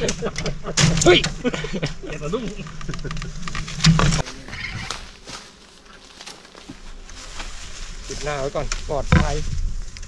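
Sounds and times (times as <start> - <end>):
twigs rustling and clicking: 2.3 - 10.0.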